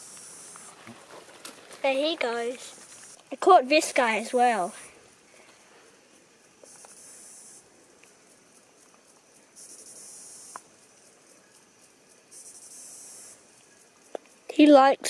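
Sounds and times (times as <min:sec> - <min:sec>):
insect buzzing call: 0:00.0 - 0:15.0.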